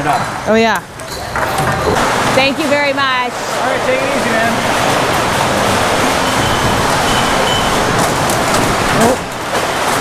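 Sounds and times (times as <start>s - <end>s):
loud rushing noise: 1.9s - 10.0s.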